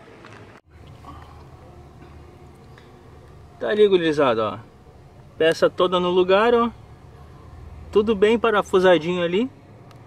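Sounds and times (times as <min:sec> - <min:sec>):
low steady hum: 0:00.7 - 0:10.0.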